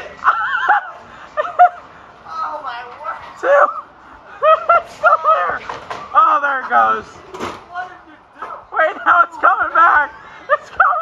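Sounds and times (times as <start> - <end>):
man laughing: 0.2 - 1.8, 8.8 - 11.0.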